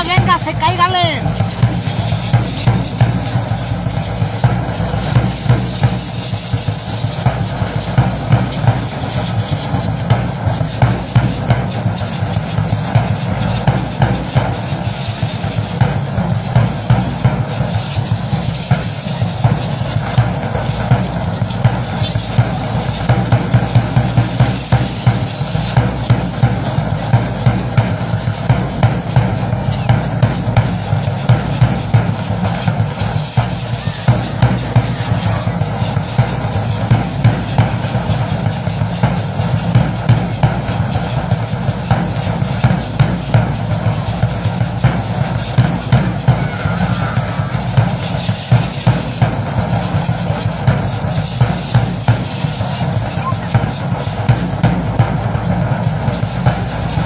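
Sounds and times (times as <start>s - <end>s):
drum steady beat: 0.0s - 57.0s.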